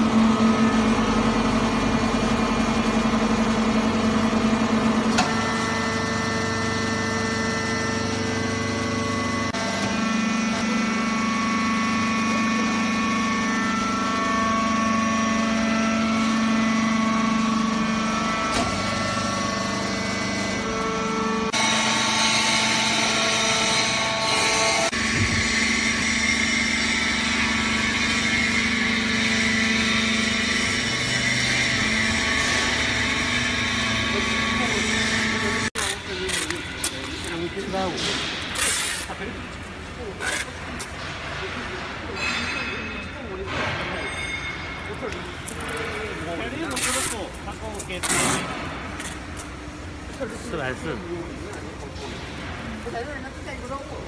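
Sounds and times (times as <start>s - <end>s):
hydraulic machine hum: 0.0s - 54.0s.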